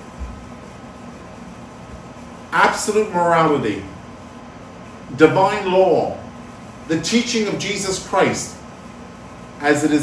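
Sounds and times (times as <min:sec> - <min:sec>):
faint hum: 0:00.0 - 0:10.0
steady hiss: 0:00.0 - 0:10.0.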